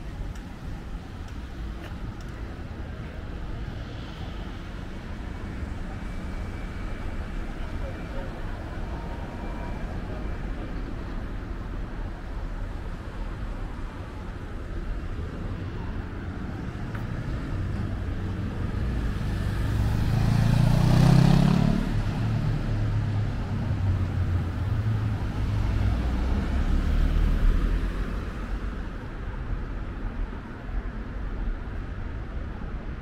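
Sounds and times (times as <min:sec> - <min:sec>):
street traffic: 0:00.0 - 0:33.0
vehicle passing close by: 0:19.2 - 0:23.1.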